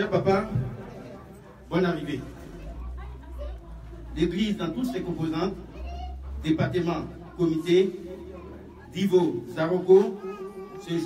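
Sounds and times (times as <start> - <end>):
man speaking through a microphone: 0.0 - 1.0, 1.6 - 2.4, 4.2 - 5.7, 6.4 - 11.0.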